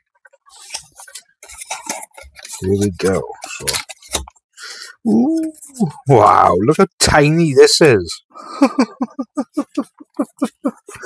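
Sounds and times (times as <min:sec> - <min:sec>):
cardboard packaging rustling: 0:00.5 - 0:04.4.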